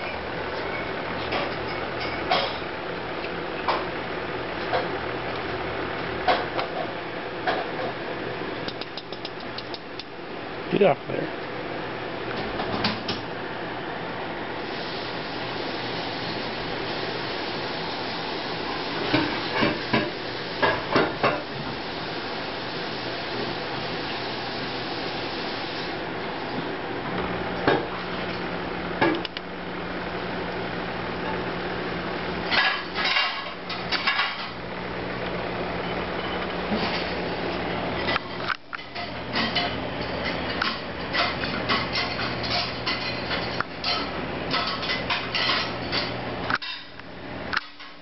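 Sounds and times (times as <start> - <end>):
steady hiss: 14.6 - 20.7.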